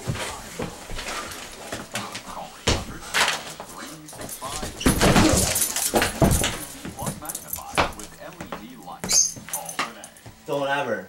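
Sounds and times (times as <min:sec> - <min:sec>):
bodies thumping on floor: 0:00.0 - 0:03.1, 0:04.2 - 0:09.6.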